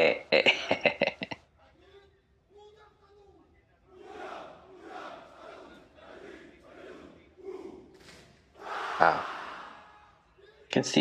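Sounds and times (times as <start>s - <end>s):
soldiers chanting in unison: 3.9s - 10.7s.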